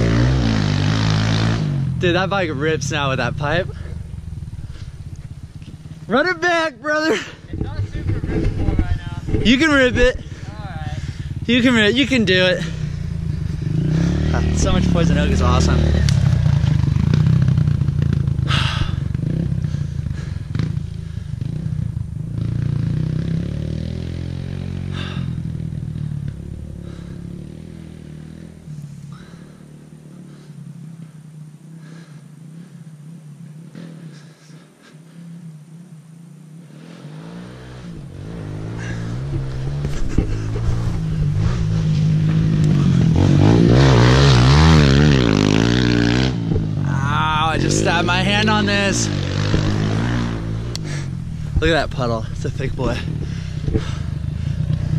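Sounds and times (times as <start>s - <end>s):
dirt bike engine revving: 0.0s - 54.9s.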